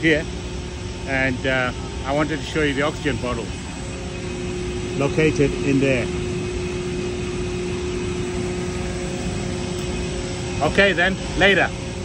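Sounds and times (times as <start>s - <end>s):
machinery hum with held tone: 0.0s - 12.0s.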